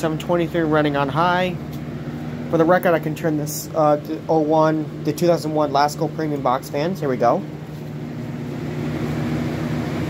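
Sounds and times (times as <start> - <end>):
fan air rushing: 0.0 - 10.0
low motor hum: 0.0 - 10.0.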